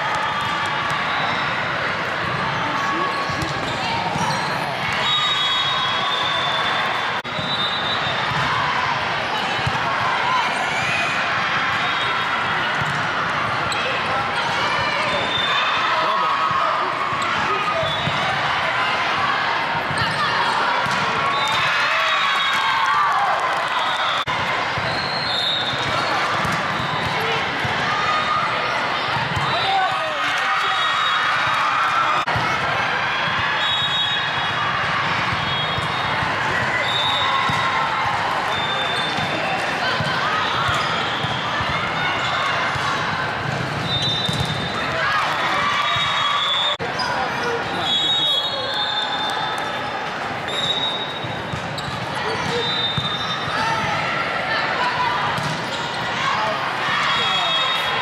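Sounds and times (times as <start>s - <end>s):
voices calling and chattering: 0.0s - 58.0s
volleyballs hit and bouncing: 1.9s - 5.0s, 12.7s - 15.3s, 19.8s - 22.8s, 23.4s - 27.9s, 34.3s - 46.2s, 50.0s - 54.1s, 55.3s - 56.0s
shoes squeaking on court: 50.5s - 53.6s.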